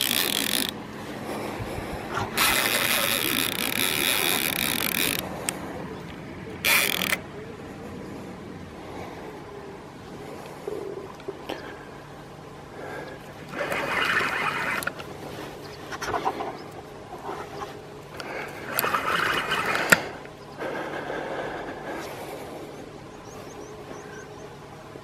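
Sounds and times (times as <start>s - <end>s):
sharp reel click: 0.0s - 0.8s
spinning reel winding: 0.0s - 0.8s, 2.4s - 5.2s, 6.6s - 7.2s.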